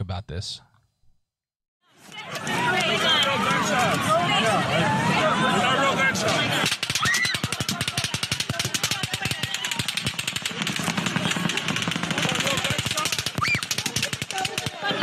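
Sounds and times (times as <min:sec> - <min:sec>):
rapid automatic gunfire: 0:06.6 - 0:15.0.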